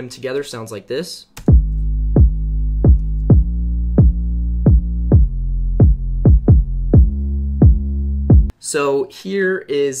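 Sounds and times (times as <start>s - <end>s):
kick drum hits: 1.5s - 8.5s
overdriven bass: 1.5s - 8.5s.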